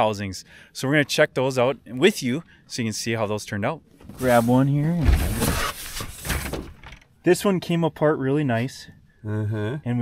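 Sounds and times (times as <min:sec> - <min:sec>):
cardboard rustling and scraping: 0:04.0 - 0:06.8.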